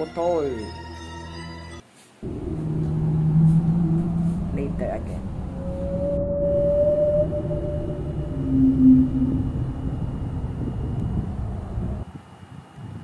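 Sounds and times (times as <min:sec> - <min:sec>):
short tone: 0:02.2 - 0:10.8
faint high whine: 0:02.2 - 0:12.1
wind buffeting microphone: 0:02.2 - 0:13.0.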